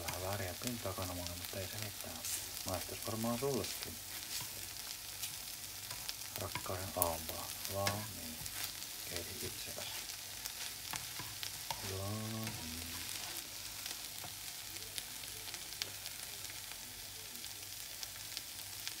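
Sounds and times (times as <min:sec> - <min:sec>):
food sizzling in a pan: 0:00.0 - 0:19.0
spatula scraping a pan: 0:04.0 - 0:13.6.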